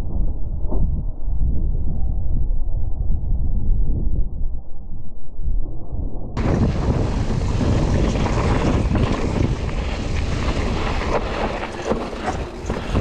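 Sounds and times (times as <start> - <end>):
tyres rolling on gravelly dirt: 6.4 - 13.0
wind buffeting microphone: 6.4 - 13.0.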